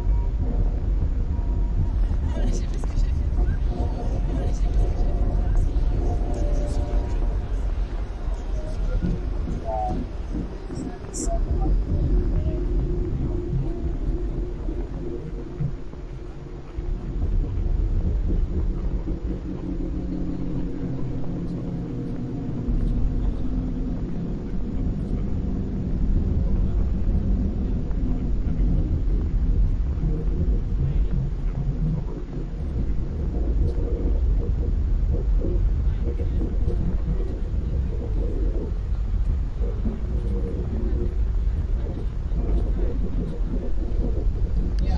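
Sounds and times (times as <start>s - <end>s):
loud low rumble: 0.0s - 44.9s
muffled voice-like sounds: 0.0s - 44.9s.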